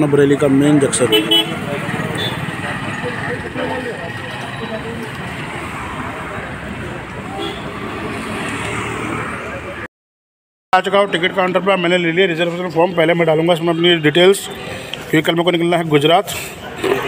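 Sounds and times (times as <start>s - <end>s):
people's voices: 0.0s - 9.9s, 10.8s - 17.0s
vehicles passing: 0.0s - 9.9s, 10.8s - 17.0s
car horn toots: 1.1s - 1.6s.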